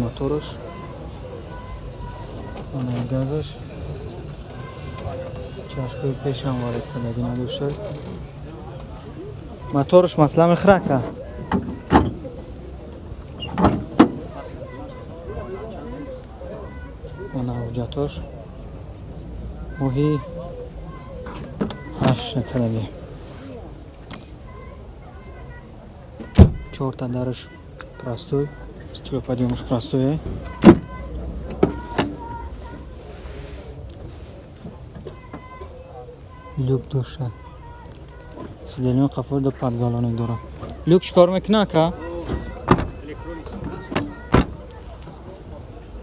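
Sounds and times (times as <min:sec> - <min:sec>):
faint voices: 0:00.0 - 0:46.0
car door latch clicking: 0:42.3 - 0:43.0.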